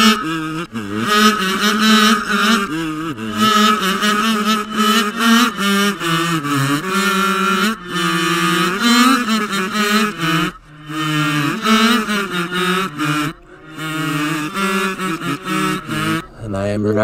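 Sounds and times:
reversed voice singing: 0:00.0 - 0:16.5.

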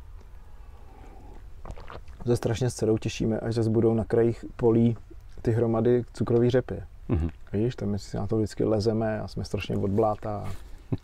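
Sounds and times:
low background rumble: 0:00.0 - 0:11.0
person speaking: 0:02.1 - 0:10.6.

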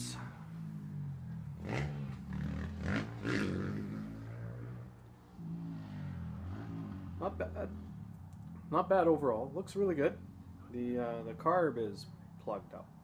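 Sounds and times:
distant dirt bike engine: 0:00.0 - 0:13.0.

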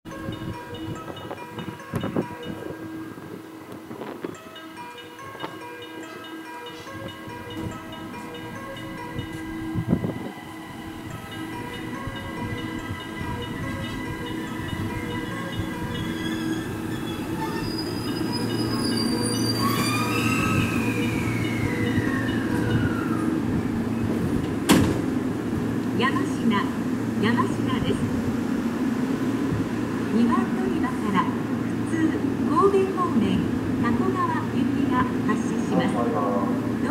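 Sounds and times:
electric train braking to a stop: 0:06.7 - 0:25.2
train motor whine: 0:09.3 - 0:25.1.

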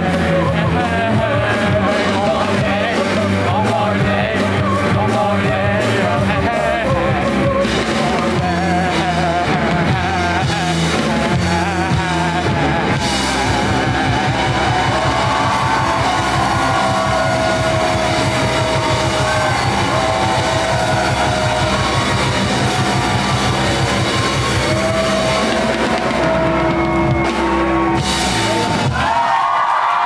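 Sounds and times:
person singing into microphone: 0:00.0 - 0:26.7
bass: 0:00.0 - 0:30.0
drum kit: 0:00.0 - 0:30.0
electric guitars: 0:00.0 - 0:30.0.

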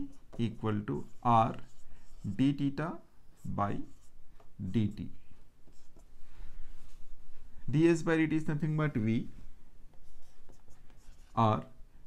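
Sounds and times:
marker scraping on whiteboard: 0:00.0 - 0:07.2, 0:09.9 - 0:11.7.

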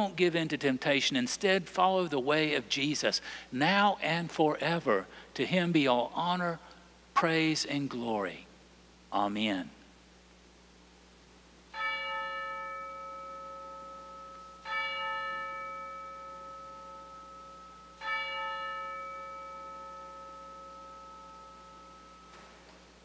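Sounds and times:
bell ringing: 0:11.7 - 0:23.0.

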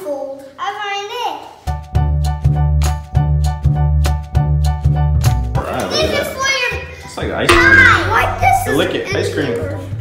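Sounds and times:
background music with steady beat: 0:01.7 - 0:05.7, 0:07.4 - 0:10.0.

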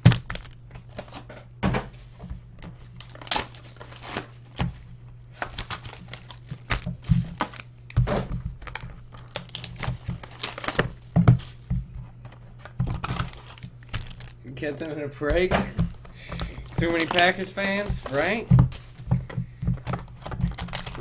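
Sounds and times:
card pack wrappers crinkling: 0:00.0 - 0:01.2, 0:02.6 - 0:21.0
cards being handled: 0:00.0 - 0:01.3, 0:02.3 - 0:21.0
steady low hum: 0:00.0 - 0:21.0.

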